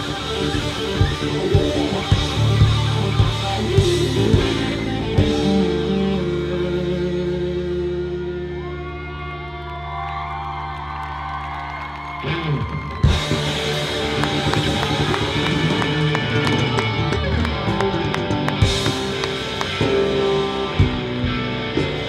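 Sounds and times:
drum kit with cymbals: 0.0 - 7.2, 13.0 - 22.0
electric guitar bending notes: 0.0 - 10.1, 12.2 - 22.0
bass guitar low notes: 0.0 - 22.0.

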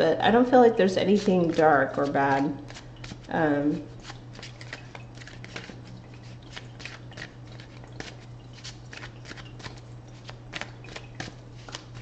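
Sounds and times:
cards being shuffled: 1.1 - 3.4, 4.0 - 12.0.

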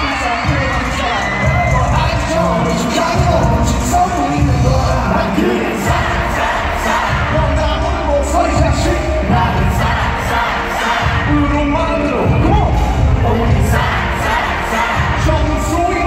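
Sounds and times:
man singing: 0.0 - 6.0
bass-heavy backing track: 0.0 - 16.0
crowd cheering: 0.0 - 16.0.

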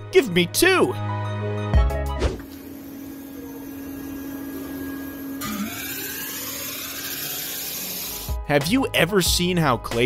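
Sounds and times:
metal lathe humming: 2.5 - 8.4
roller hissing on spinning metal: 5.9 - 8.2.

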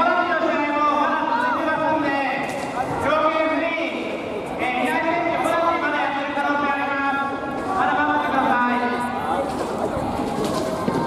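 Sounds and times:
many voices overlapping: 0.0 - 11.0.

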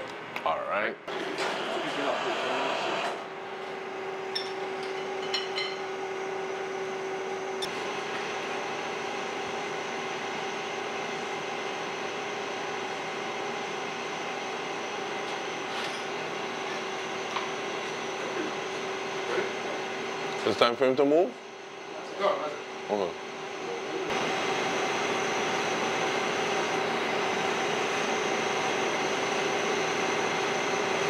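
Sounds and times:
steady mechanical hum: 0.0 - 31.0.

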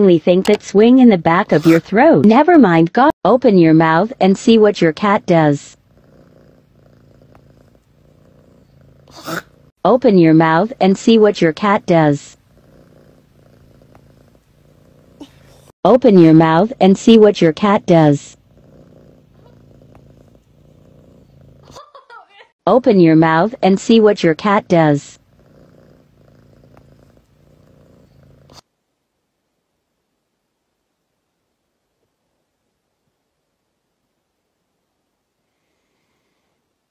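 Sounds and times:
cat purring: 3.7 - 21.9, 23.1 - 28.6.

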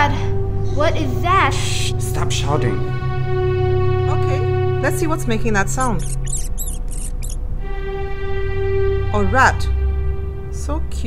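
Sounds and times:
rat squeaking: 5.6 - 7.4.

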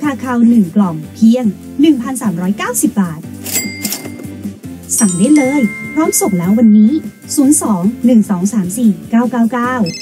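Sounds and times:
background music: 0.0 - 10.0
cash register ka-ching: 3.4 - 7.2.

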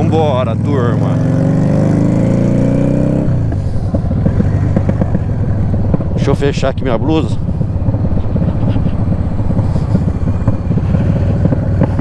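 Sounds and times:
exhaust popping: 0.0 - 12.0
motorcycle engine accelerating: 0.0 - 12.0.

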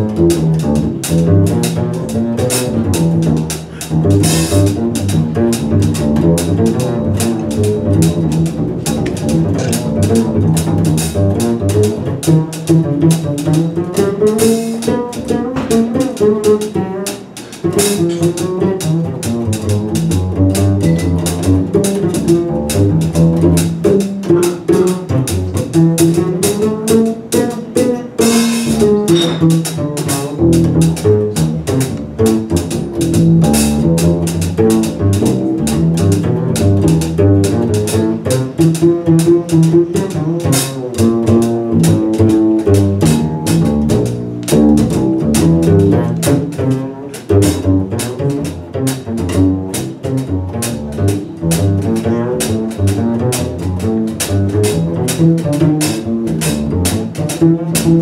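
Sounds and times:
drum kit cymbals: 0.0 - 58.0
jazz guitar: 0.0 - 58.0
upright bass pizzicato: 0.0 - 58.0.

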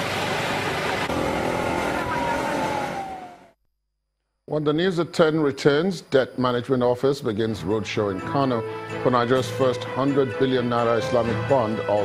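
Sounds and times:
cars driving past: 0.0 - 3.5.

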